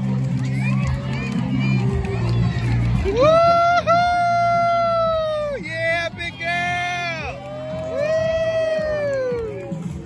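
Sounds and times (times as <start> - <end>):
crowd chattering and cheering: 0.0 - 10.0.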